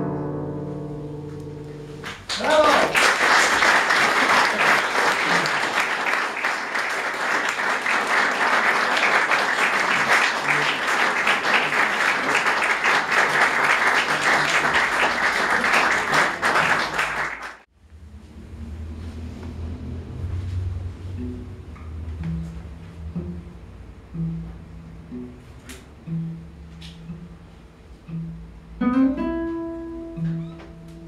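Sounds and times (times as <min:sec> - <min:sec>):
audience applauding: 0:02.0 - 0:17.7.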